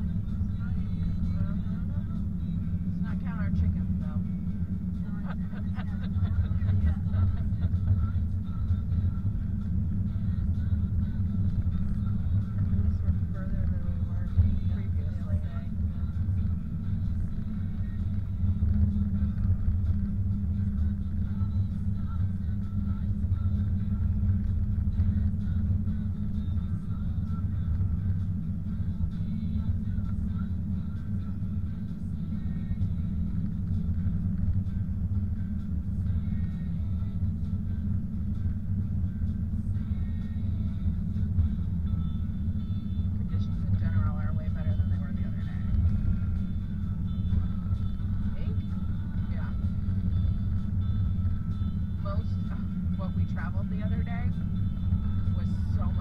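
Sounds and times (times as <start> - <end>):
car tyres and engine rumble: 0.0 - 56.0.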